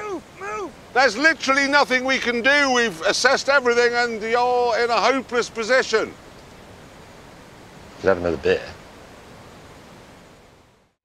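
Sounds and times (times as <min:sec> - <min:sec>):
steady outdoor background rush: 0:00.0 - 0:10.1.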